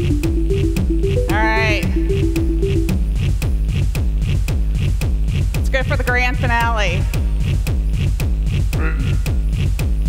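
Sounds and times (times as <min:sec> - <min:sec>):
deep kick drums: 0:00.0 - 0:03.2
electronic dance music: 0:00.0 - 0:03.2.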